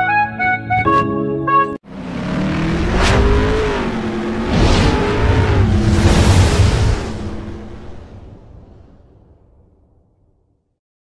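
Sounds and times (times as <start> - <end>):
whooshes: 2.6 - 9.5.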